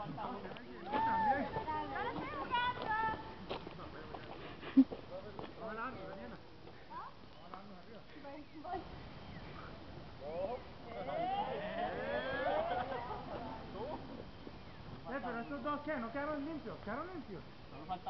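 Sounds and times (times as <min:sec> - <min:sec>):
people talking: 0:09.6 - 0:14.2.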